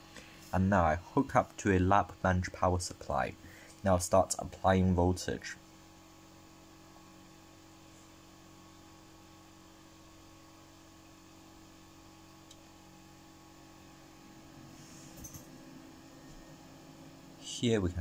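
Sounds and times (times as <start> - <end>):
faint electrical hum: 0.0 - 18.0.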